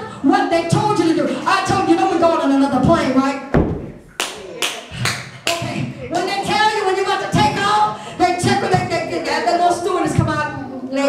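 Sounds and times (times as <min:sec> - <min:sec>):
heavy thump: 0:03.5 - 0:04.0
hand claps: 0:04.2 - 0:05.7.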